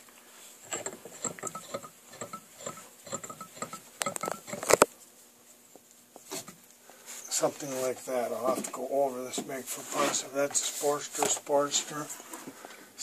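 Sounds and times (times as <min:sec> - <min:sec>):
sharp metal knocks: 0:00.7 - 0:04.7
metal clicks taps and scrapes: 0:00.7 - 0:04.9.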